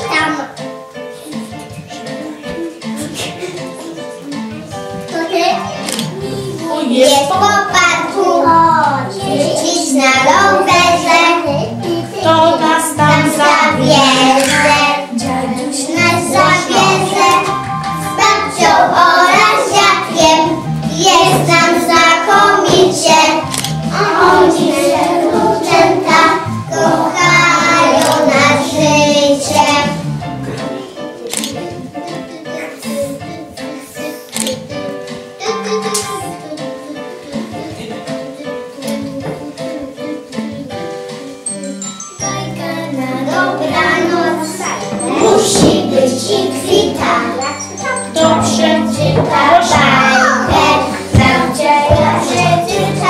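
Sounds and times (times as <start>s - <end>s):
musical accompaniment: 0.0s - 53.0s
children singing: 1.2s - 31.5s, 32.1s - 53.0s.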